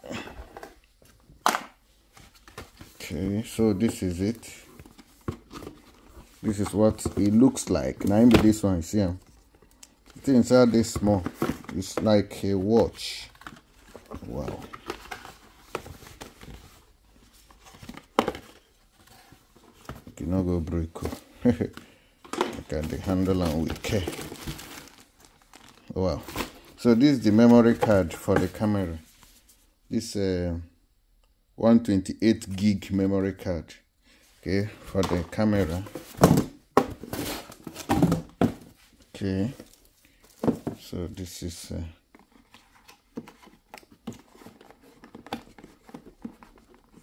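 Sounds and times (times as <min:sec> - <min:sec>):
cardboard and paper packaging rustling: 0:00.2 - 0:29.7, 0:34.4 - 0:47.0.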